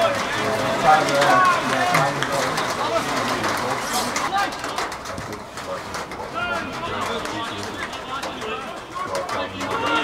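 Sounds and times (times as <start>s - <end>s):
distant shouts of players: 6.3s - 10.0s.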